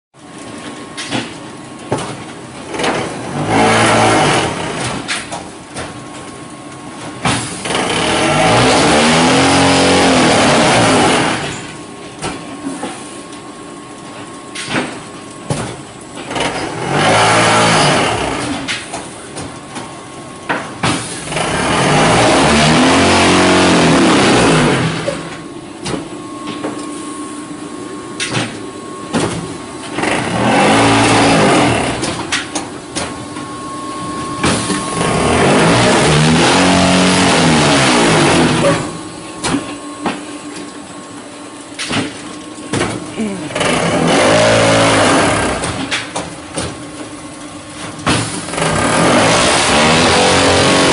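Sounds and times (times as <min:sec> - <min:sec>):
hydraulic unit humming: 0:00.2 - 0:50.9
vibration motors running: 0:00.2 - 0:50.9.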